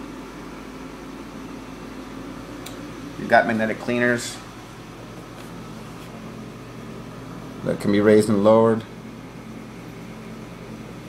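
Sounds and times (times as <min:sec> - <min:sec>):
aquarium pumps humming: 0:00.0 - 0:11.0.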